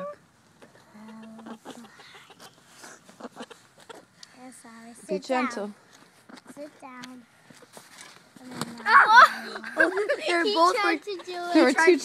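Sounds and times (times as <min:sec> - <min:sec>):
hen clucking: 0:00.0 - 0:04.3, 0:06.2 - 0:06.7.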